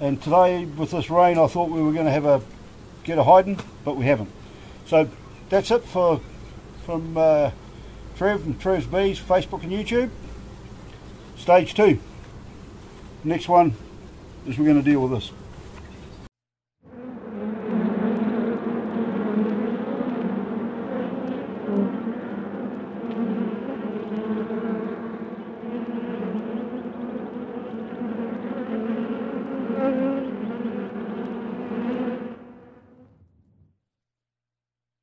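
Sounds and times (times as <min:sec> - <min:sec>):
honeybees buzzing: 0:00.0 - 0:16.3, 0:16.9 - 0:33.3.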